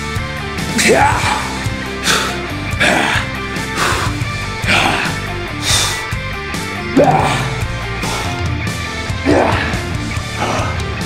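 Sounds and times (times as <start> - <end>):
background music: 0.0 - 11.0
sharp exhaled breaths: 1.4 - 6.3, 7.0 - 8.7.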